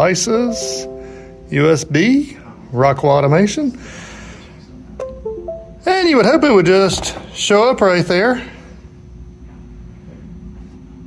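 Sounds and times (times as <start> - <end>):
computer system chime: 0.4 - 2.2, 5.0 - 6.2.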